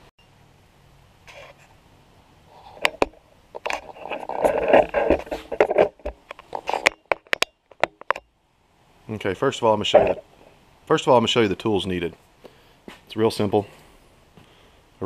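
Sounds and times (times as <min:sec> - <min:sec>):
rubbing and scraping: 0:01.3 - 0:01.8, 0:02.5 - 0:08.2, 0:09.8 - 0:10.3.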